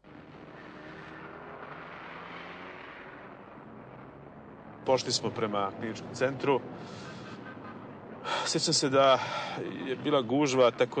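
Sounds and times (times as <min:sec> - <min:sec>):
car traffic rumble: 0:00.0 - 0:11.0
man speaking: 0:08.3 - 0:11.0.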